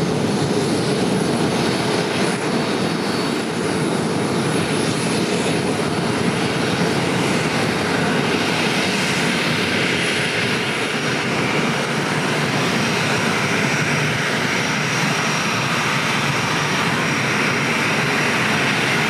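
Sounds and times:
jet engines running: 0.0 - 19.0.

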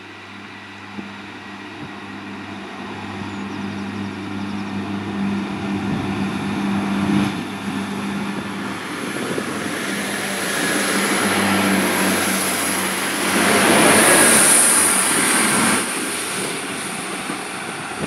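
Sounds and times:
diesel train passing: 0.0 - 18.0.

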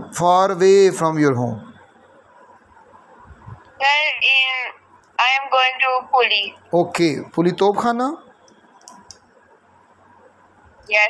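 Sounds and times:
person speaking over a call: 3.8 - 8.2.

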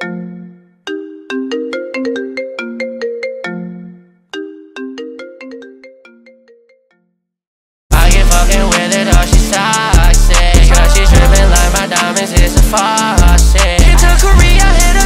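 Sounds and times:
marimba-like phone ringtone: 0.0 - 7.2, 8.7 - 15.0.

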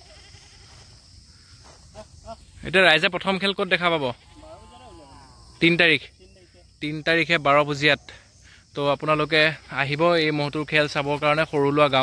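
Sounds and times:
insect drone: 0.0 - 12.0.

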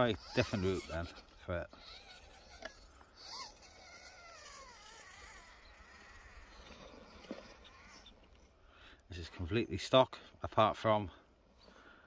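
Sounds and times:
electric motor and gears whining: 0.0 - 8.4.

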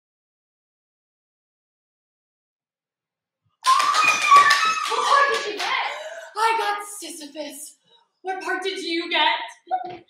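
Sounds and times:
hand claps: 3.6 - 6.0
woman squealing excitedly: 3.6 - 6.3.

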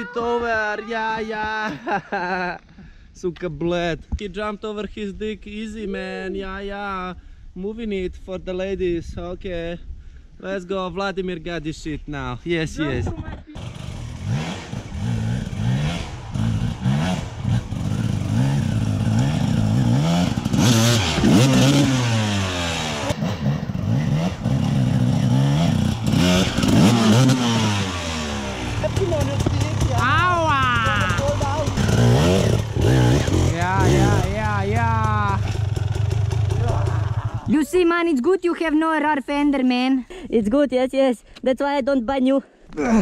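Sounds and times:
dirt bike engine revving: 13.6 - 37.6.

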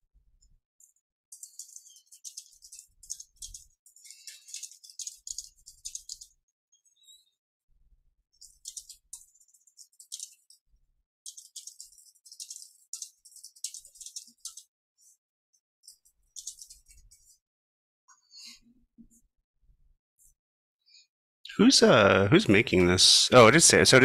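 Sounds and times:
computer keyboard typing: 1.3 - 6.4, 8.4 - 10.6, 11.3 - 14.7, 16.4 - 17.3.

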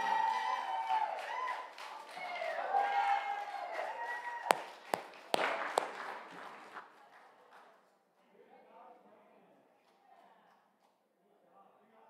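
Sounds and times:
sharp knocks: 4.5 - 6.8.

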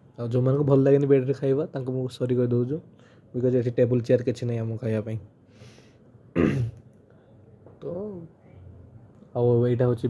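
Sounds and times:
man clearing his throat: 6.3 - 6.8.

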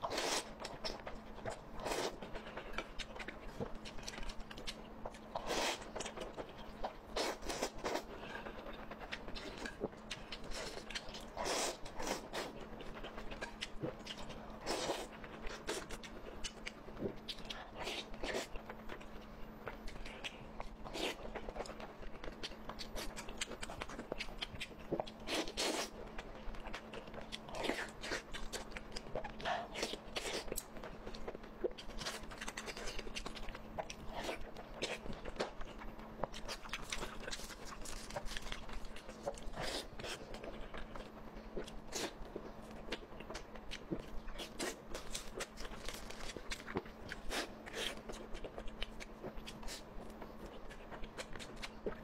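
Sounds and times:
wet chewing: 0.0 - 52.0.

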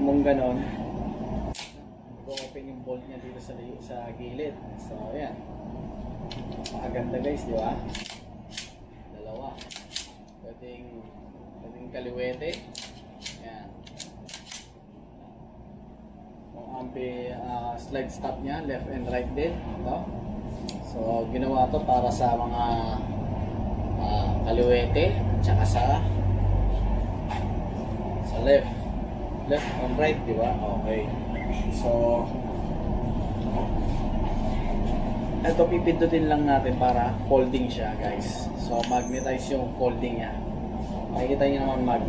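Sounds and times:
low steady rumble: 0.0 - 42.0
gun parts clicking and clacking: 9.4 - 10.4, 12.5 - 14.7.

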